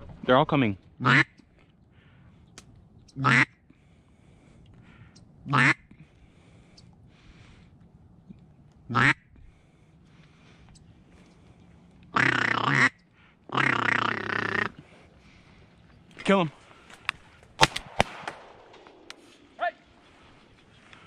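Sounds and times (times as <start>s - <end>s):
duck call quacks: 1.0s - 1.4s, 3.2s - 3.6s, 5.5s - 5.8s, 8.9s - 9.2s, 12.1s - 14.8s.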